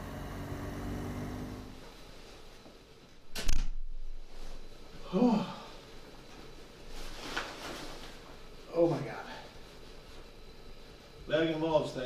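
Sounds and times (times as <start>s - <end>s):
motorcycle engine running: 0.0s - 1.8s.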